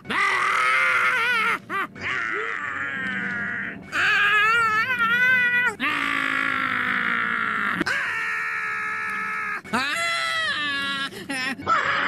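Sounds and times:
cartoon character screaming: 0.0 - 11.0.

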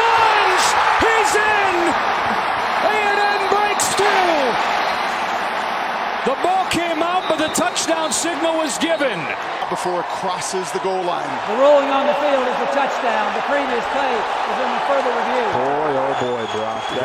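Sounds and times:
shouts and whoops: 0.0 - 4.8
stadium crowd cheering: 0.0 - 17.0.

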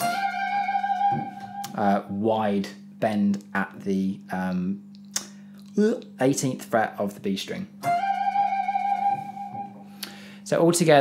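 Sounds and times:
electric guitar note bending: 0.0 - 2.2, 7.8 - 10.3.

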